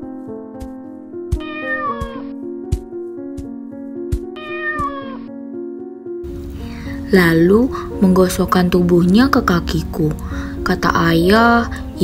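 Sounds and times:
background music with steady beat: 0.0 - 12.0
cat meowing: 1.4 - 2.3, 4.4 - 5.3.

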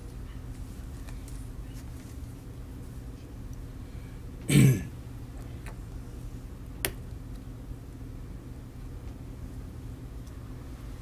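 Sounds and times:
low room hum: 0.0 - 11.0
person clearing throat: 4.5 - 5.0.

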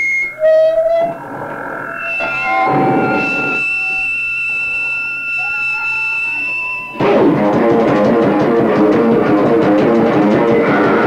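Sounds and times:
distorted electric guitars: 0.0 - 11.0
electric guitar feedback tones: 0.0 - 11.0
drums: 6.3 - 11.0.

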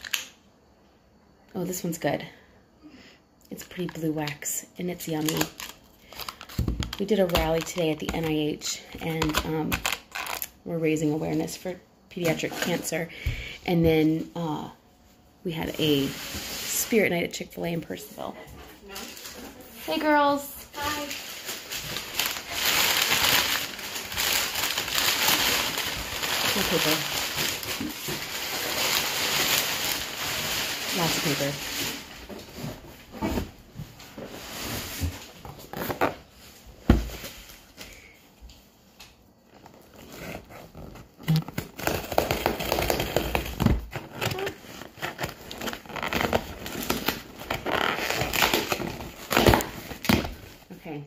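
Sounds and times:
packing paper crinkling: 5.0 - 8.3, 18.9 - 32.3, 39.5 - 50.6.

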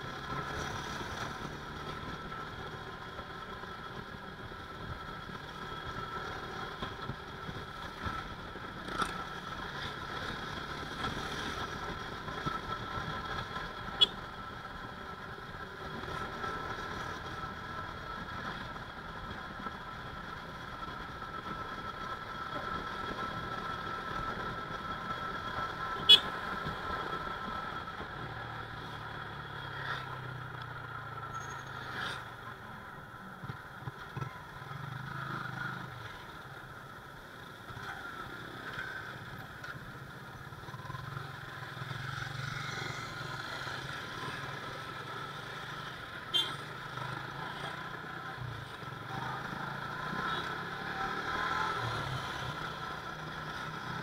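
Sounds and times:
motorcycle engine and road noise: 0.0 - 54.0.

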